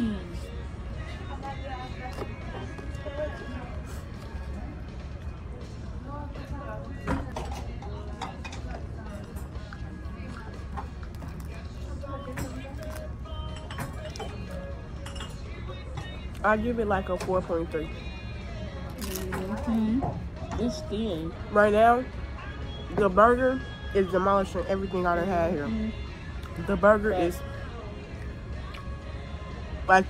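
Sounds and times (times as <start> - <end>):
indistinct chatter: 0.0 - 16.6
background music: 0.0 - 30.0
tableware clicks and knocks: 12.2 - 16.1.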